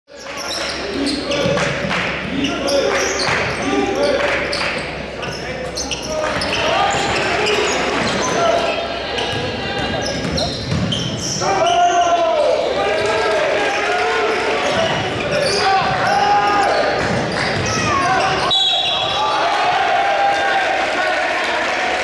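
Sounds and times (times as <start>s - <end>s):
voices of players and crowd: 0.1s - 22.0s
sneakers squeaking on court: 0.2s - 1.8s, 2.4s - 12.0s, 14.2s - 19.2s
basketball bouncing: 9.3s - 11.0s.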